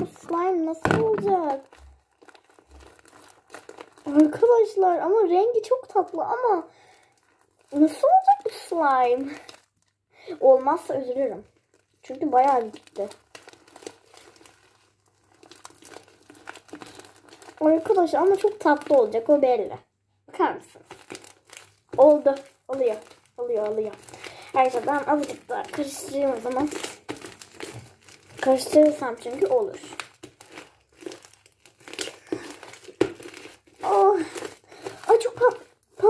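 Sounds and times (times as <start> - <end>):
slime crackles and squishes: 0.0 - 36.0.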